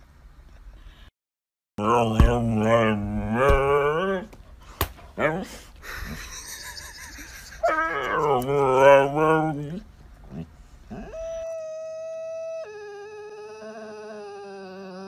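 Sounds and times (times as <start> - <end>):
husky howling: 7.6 - 9.8.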